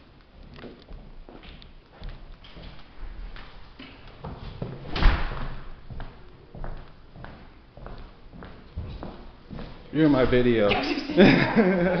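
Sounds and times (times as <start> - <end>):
door slamming shut: 4.9 - 5.7.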